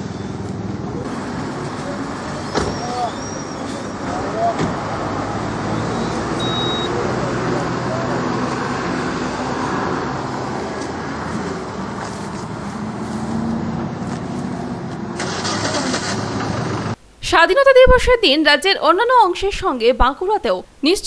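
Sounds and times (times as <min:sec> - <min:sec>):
vehicle engine idling: 0:00.0 - 0:17.0
roadside traffic: 0:00.0 - 0:17.2
short high beep: 0:05.8 - 0:07.0.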